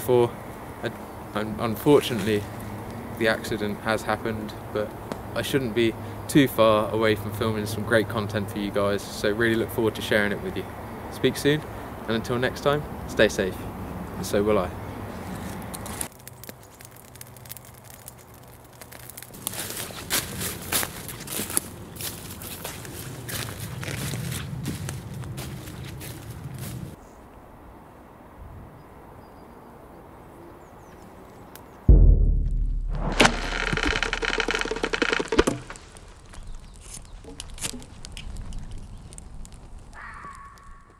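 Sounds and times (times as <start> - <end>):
footsteps crunching on dry leaves: 15.2 - 27.0
campfire crackling: 15.3 - 26.9, 32.9 - 40.8
sharp knock: 31.9 - 35.7
fast wooden rattling clatter: 33.2 - 35.9.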